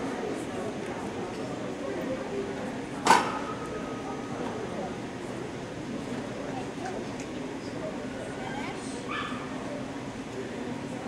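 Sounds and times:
murmur of voices in hall: 0.0 - 11.0.

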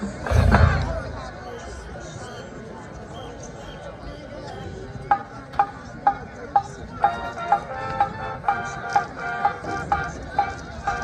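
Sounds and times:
crowd noise: 0.0 - 11.0
marching band chords: 0.2 - 1.4, 7.0 - 11.0.

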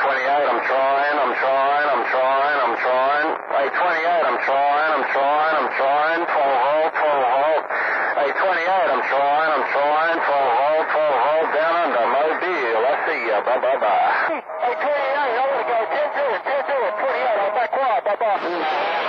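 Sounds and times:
voice over radio speaker: 0.0 - 19.0.

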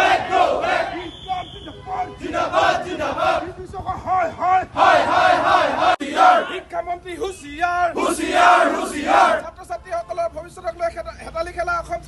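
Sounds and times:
men chanting slogans: 0.0 - 1.2, 1.9 - 6.7, 7.8 - 9.4.

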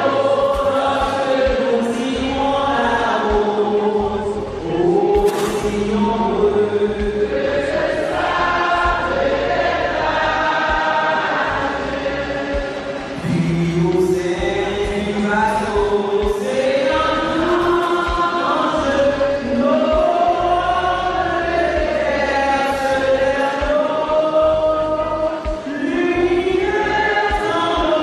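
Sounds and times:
choir singing long notes: 0.0 - 28.0.

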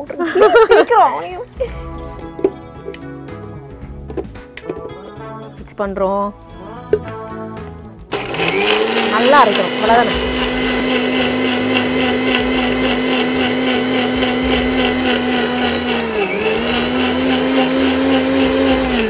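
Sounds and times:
mixer grinder motor whine: 8.1 - 19.0.

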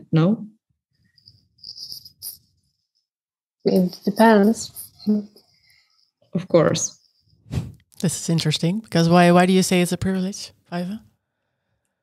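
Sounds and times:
high-pitched chirping tone: 1.1 - 2.5.

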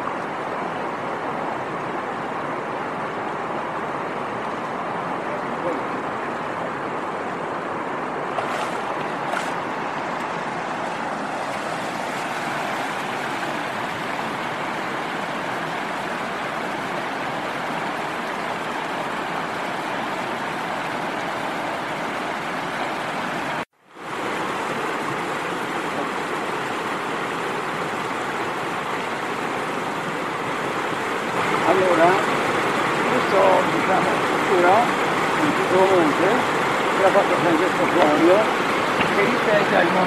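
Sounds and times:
water rushing over weir: 0.0 - 40.0.

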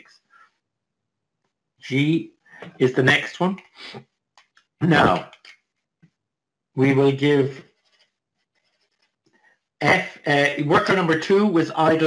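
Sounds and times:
man speaking: 1.8 - 4.0, 4.8 - 5.5, 6.8 - 7.6, 9.8 - 12.0.

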